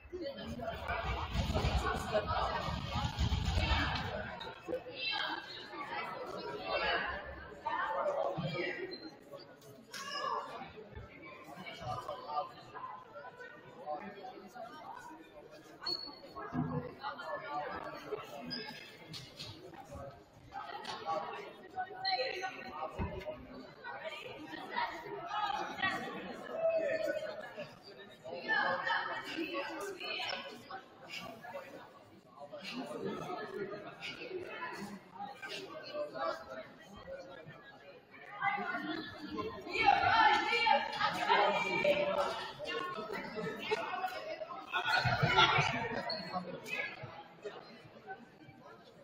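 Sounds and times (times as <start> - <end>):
echoing chatter of people: 0.0 - 49.0.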